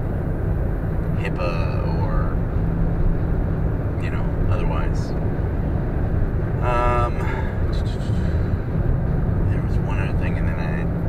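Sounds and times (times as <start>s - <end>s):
car cabin road rumble: 0.0s - 11.0s
person speaking: 6.6s - 8.4s.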